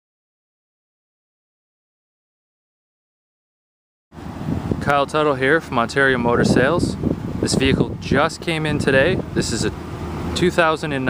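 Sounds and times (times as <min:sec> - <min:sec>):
outdoor background noise: 0:04.1 - 0:11.0
man speaking: 0:04.8 - 0:09.8, 0:10.4 - 0:11.0.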